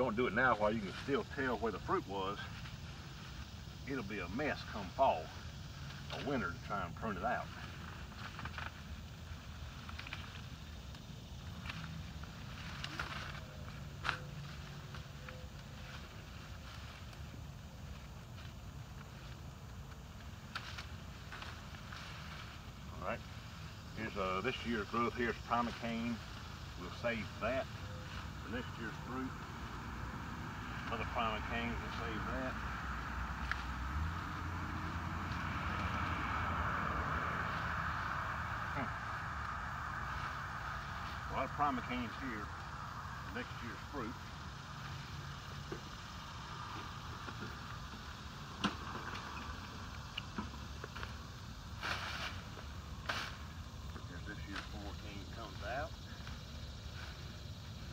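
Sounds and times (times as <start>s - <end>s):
leaves rustling and crackling: 0.0s - 57.9s
low steady rumble: 0.0s - 57.9s.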